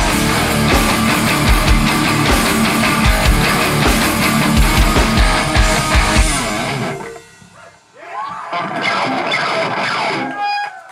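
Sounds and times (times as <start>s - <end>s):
guitar ringing: 0.0s - 10.4s
metal band playing: 0.0s - 10.4s.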